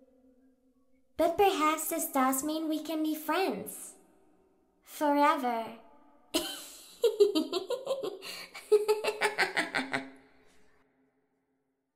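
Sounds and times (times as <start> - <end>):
girl giggling: 6.4 - 10.2.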